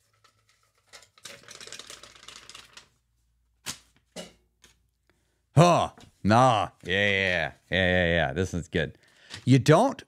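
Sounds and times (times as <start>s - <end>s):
paper slips rustling in metal pail: 0.0s - 2.9s.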